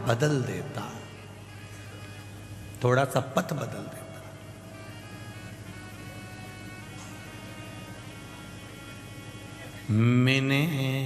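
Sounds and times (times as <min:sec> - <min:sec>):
man speaking: 0:02.8 - 0:04.4.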